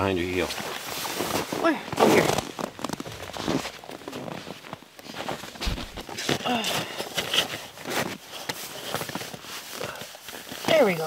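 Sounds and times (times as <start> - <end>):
boots shifting on snow: 0.0 - 11.0
straps rustling: 0.2 - 11.0.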